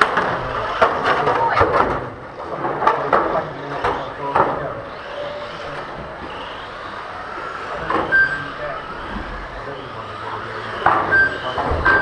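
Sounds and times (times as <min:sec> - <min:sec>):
high whines of passing cars: 0:00.0 - 0:12.0
rc cars motor hiss: 0:04.8 - 0:10.9.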